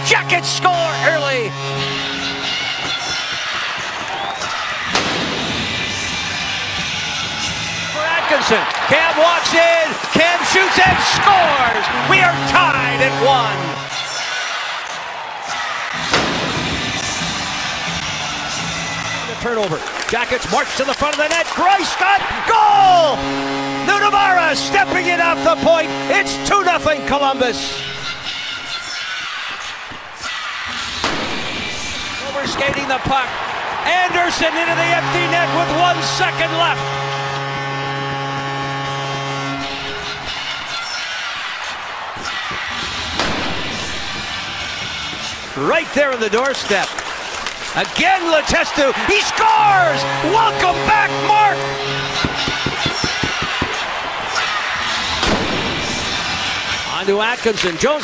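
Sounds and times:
celebration music: 0:00.0 - 0:03.1, 0:06.0 - 0:14.2, 0:21.6 - 0:28.4, 0:32.0 - 0:40.6, 0:48.0 - 0:54.2
goal horn: 0:00.0 - 0:29.7, 0:31.6 - 0:57.4
crowd cheering: 0:00.0 - 0:58.0
cannon blast: 0:04.9 - 0:05.8, 0:43.2 - 0:44.0, 0:55.2 - 0:56.2.

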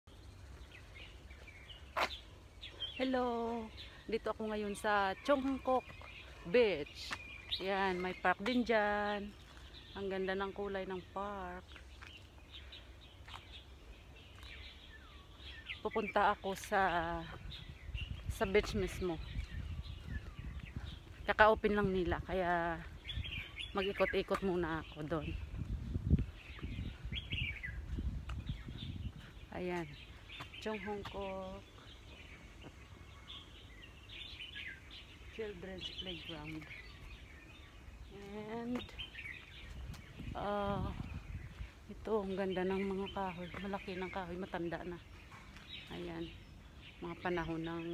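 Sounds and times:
small birds chirping: 0:00.0 - 0:47.9
steady low rumble: 0:16.8 - 0:47.2.

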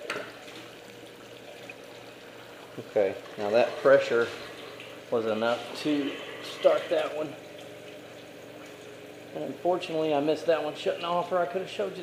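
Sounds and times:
water trickling down a pipe: 0:00.0 - 0:11.9
faint steady hum: 0:00.0 - 0:12.0.

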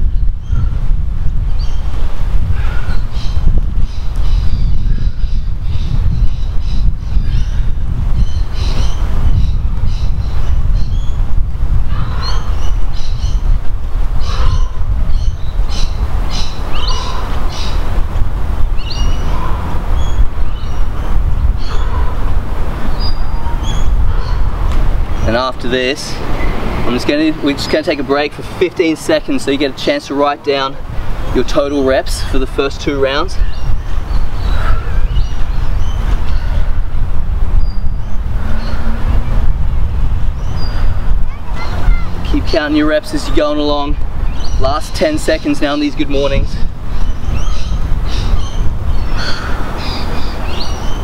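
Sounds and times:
wind rumbling on microphone: 0:00.0 - 0:51.0
birds chirping: 0:01.5 - 0:02.0, 0:02.6 - 0:18.0, 0:18.7 - 0:51.0.

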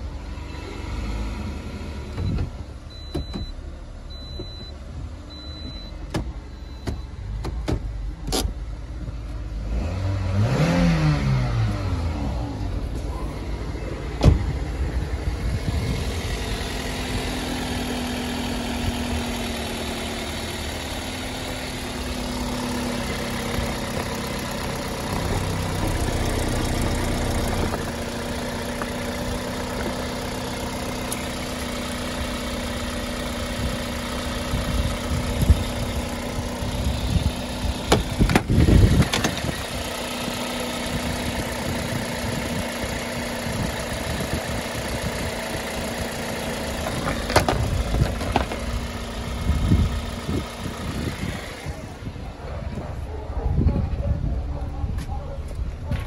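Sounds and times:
car engine idling: 0:11.7 - 0:56.0
sharp thump: 0:14.2 - 0:14.5.

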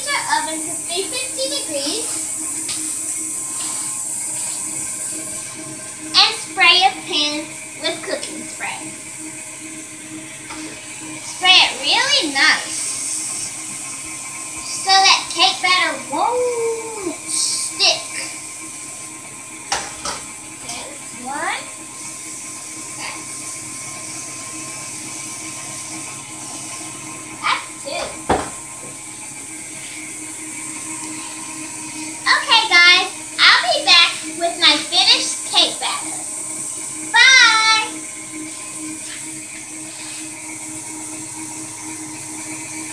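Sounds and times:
girl talking in sing-song: 0:00.0 - 0:02.1, 0:37.1 - 0:38.0.

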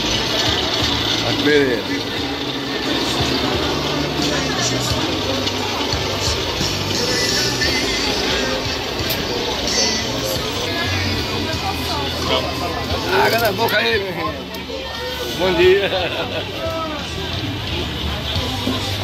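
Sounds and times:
crowd chatter: 0:00.0 - 0:19.0
music playing: 0:00.0 - 0:19.0.

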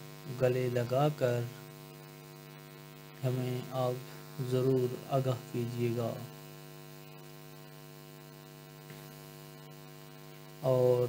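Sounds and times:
faint buzz: 0:00.0 - 0:11.0
steady electrical hum: 0:00.0 - 0:11.0.

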